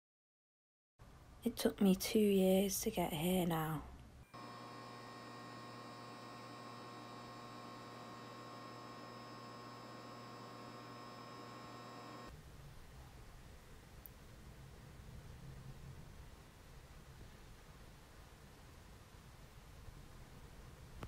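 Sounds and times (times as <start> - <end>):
neon sign electrical buzz: 4.2 - 12.3.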